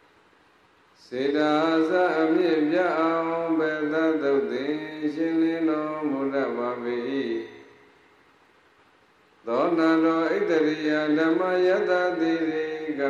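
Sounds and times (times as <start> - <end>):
man chanting: 1.0 - 7.8, 9.5 - 13.0.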